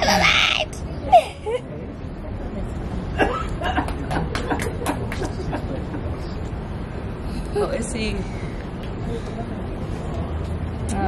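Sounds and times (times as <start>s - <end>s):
women laughing: 1.0s - 1.8s, 3.2s - 6.3s
women talking: 7.6s - 8.4s.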